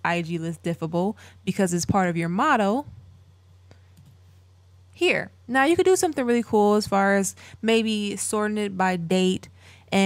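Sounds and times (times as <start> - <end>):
low steady hum: 0.0 - 10.0
computer mouse clicks: 3.9 - 4.2.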